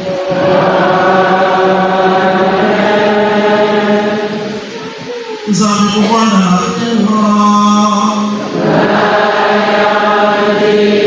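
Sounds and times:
man singing a long note: 5.5s - 8.6s.

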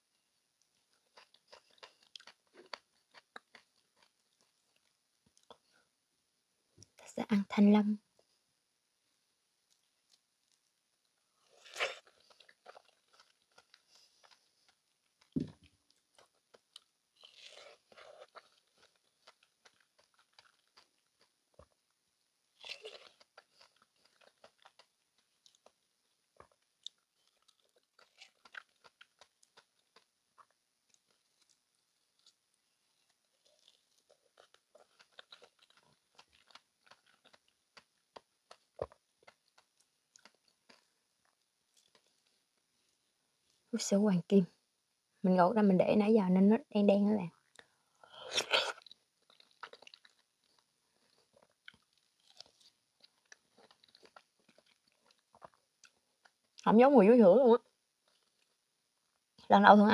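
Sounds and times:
chewing fruit: 0.6s - 5.7s, 9.6s - 42.6s, 47.3s - 56.7s, 57.6s - 59.3s.

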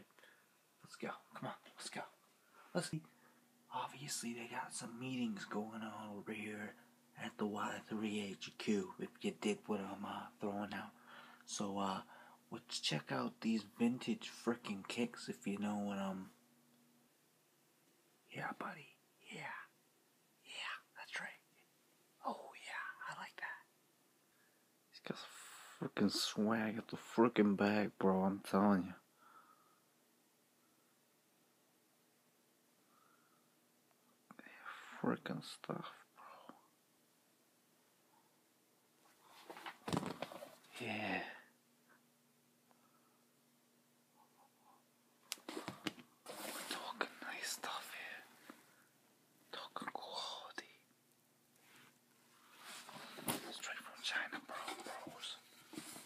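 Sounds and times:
man whispering: 0.8s - 16.3s, 18.3s - 19.8s, 20.4s - 23.7s, 24.9s - 29.1s, 34.3s - 36.7s, 40.7s - 41.5s, 46.3s - 48.4s, 49.5s - 50.9s, 53.3s - 55.6s.

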